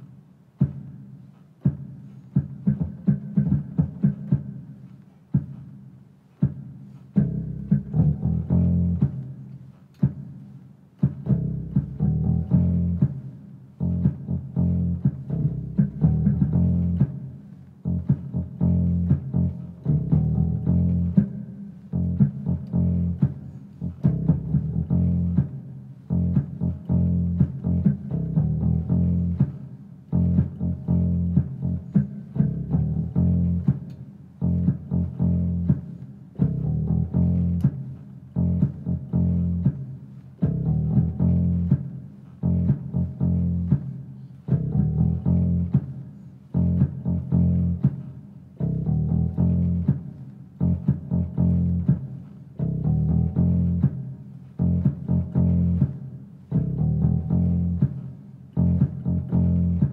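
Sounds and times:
deep bass line: 7.2s - 9.4s, 11.0s - 59.9s
funky keyboard music: 11.1s - 48.0s.

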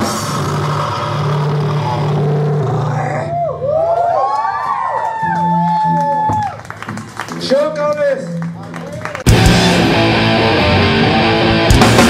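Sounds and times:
metal band playing: 0.0s - 3.2s, 9.2s - 12.0s
electric guitar feedback: 9.3s - 12.0s.

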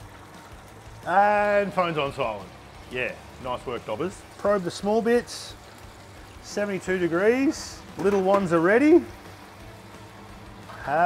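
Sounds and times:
hot oil bubbling in fryer: 0.0s - 11.0s.

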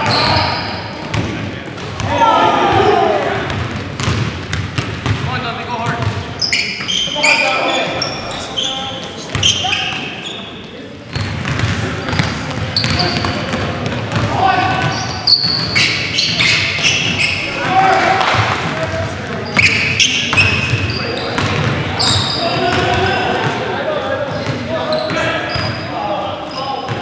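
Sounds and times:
sneaker squeaks: 0.0s - 1.2s, 5.8s - 13.6s, 14.6s - 17.6s, 19.3s - 22.9s, 24.3s - 27.0s
players shouting: 1.9s - 3.6s, 6.5s - 10.6s, 14.2s - 21.3s, 21.9s - 24.1s
basketball bouncing on hardwood: 3.5s - 5.3s.

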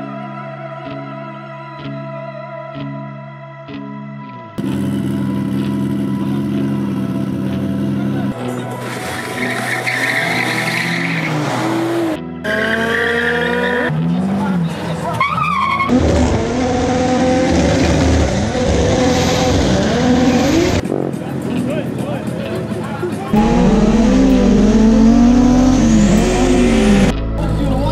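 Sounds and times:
race car engines revving: 4.6s - 27.2s
tires squealing: 8.4s - 20.8s.

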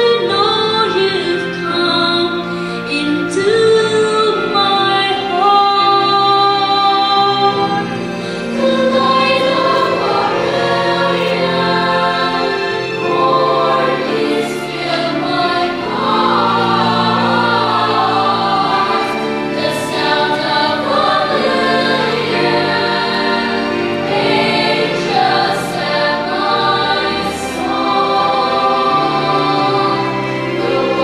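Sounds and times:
children's choir singing: 0.0s - 31.0s.

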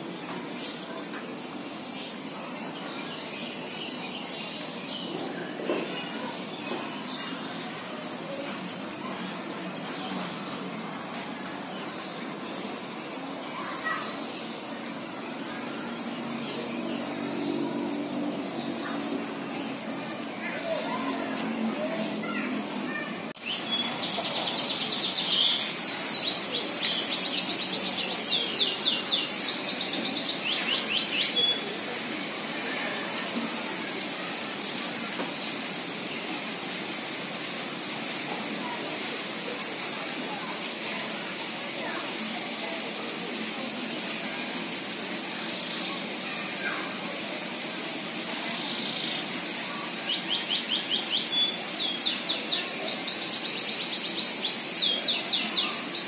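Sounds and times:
small bird singing: 23.4s - 31.9s, 48.4s - 56.0s.

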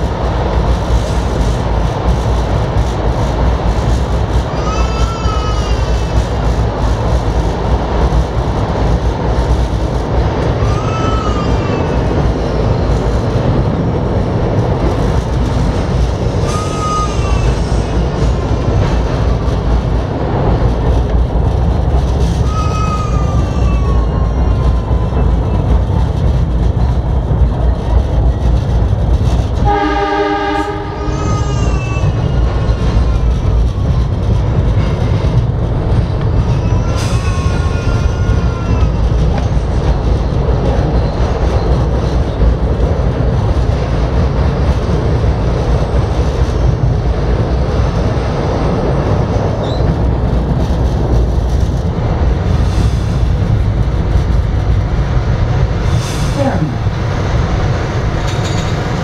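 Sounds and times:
train wheels rumbling on rail: 0.0s - 59.0s
train horn blast: 29.6s - 31.1s.

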